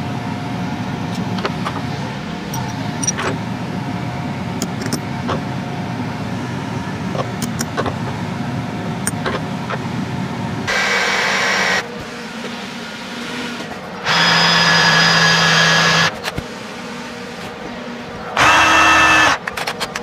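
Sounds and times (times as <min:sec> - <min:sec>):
cordless drill whining: 0:14.0 - 0:16.1, 0:18.4 - 0:19.4.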